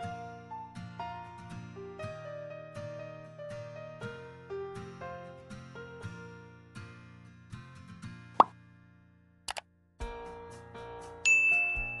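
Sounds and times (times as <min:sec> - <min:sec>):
bright bell ding: 0:11.3 - 0:12.0.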